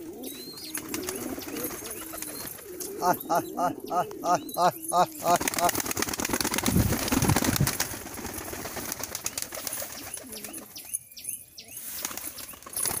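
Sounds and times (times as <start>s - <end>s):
pigeons cooing: 0.0s - 10.8s
pigeon wings flapping: 0.7s - 3.0s, 5.3s - 10.7s, 12.0s - 13.0s.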